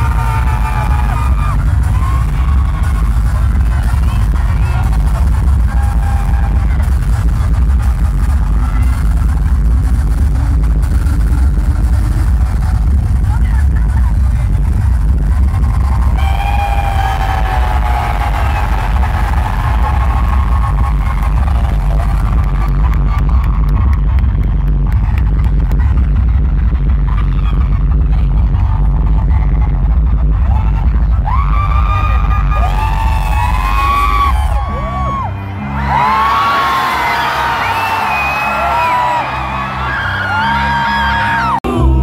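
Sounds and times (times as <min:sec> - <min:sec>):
heavy bass: 0:00.0 - 0:42.0
live amplified concert music: 0:00.0 - 0:42.0
person singing: 0:41.3 - 0:42.0.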